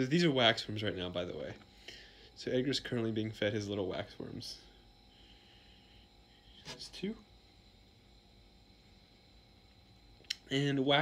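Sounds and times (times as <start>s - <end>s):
thin high whine: 0.0s - 11.0s.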